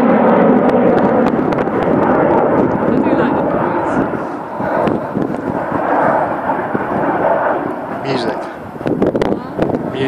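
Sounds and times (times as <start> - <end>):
jet aircraft rumbling past: 0.0 - 10.0.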